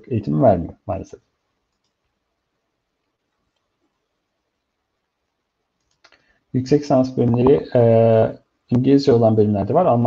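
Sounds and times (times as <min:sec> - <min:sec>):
man speaking: 0:00.0 - 0:01.3, 0:06.6 - 0:10.0
faint clicks: 0:01.6 - 0:02.2, 0:03.0 - 0:03.8, 0:05.7 - 0:06.3.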